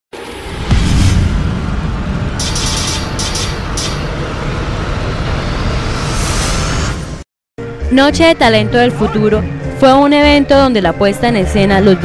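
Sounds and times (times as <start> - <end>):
whoosh: 0.1 - 7.2
low rumbling drone with music: 0.2 - 6.8, 7.6 - 12.0.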